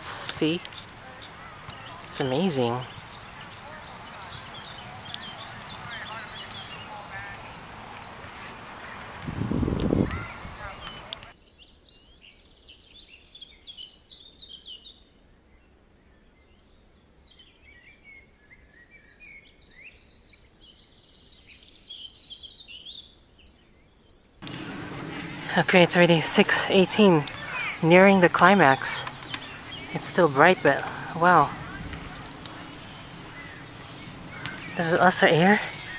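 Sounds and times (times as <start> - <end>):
steady outdoor hiss: 0.0 - 11.4, 24.4 - 35.9
small birds chirping: 0.0 - 11.7, 18.6 - 35.9.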